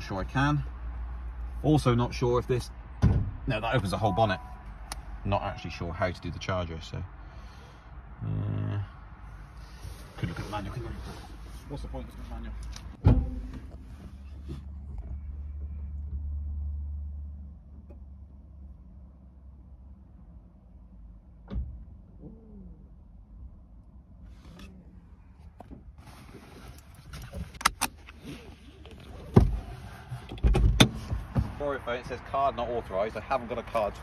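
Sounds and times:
low steady hum: 0:03.5 - 0:10.1.

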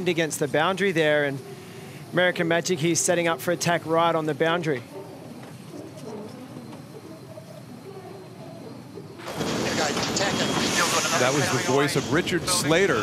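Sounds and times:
man talking over radio: 0:00.0 - 0:05.0, 0:09.4 - 0:13.0
voices: 0:00.0 - 0:13.0
hiss and wind noise: 0:09.2 - 0:13.0.

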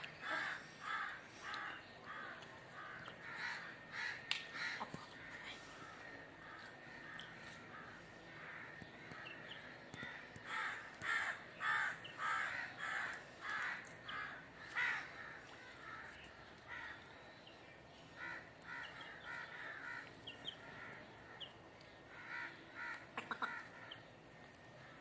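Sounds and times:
harsh bird calls: 0:00.0 - 0:24.2.

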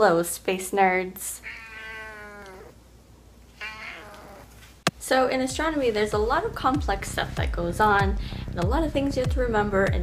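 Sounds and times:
cat meowing: 0:01.4 - 0:02.8, 0:03.6 - 0:04.6.

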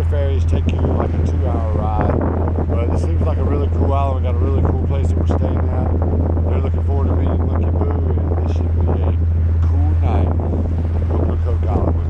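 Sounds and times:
ferry engines droning: 0:00.0 - 0:12.0
wind buffeting microphone: 0:00.0 - 0:12.0.

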